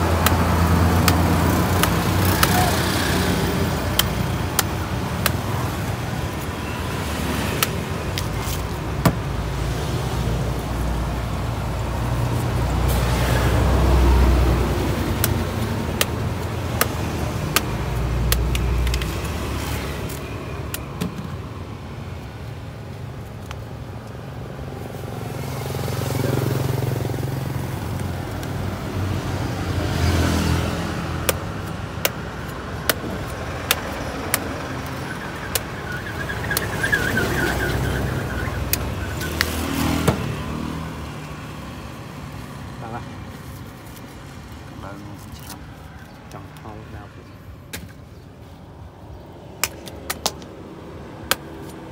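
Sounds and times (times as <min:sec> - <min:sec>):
knife chopping fruit husk: 0:00.0 - 0:05.8, 0:15.1 - 0:19.1, 0:31.2 - 0:36.0
road traffic rumble: 0:00.0 - 0:51.9.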